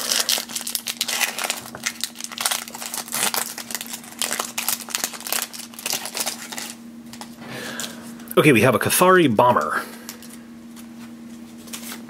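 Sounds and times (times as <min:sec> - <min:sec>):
foil wrapper crinkling and tearing: 0:00.0 - 0:08.0, 0:11.5 - 0:12.0.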